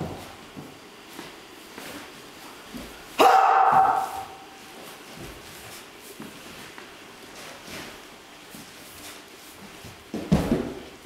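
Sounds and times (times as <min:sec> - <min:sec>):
man's martial-arts shout: 0:03.2 - 0:04.5.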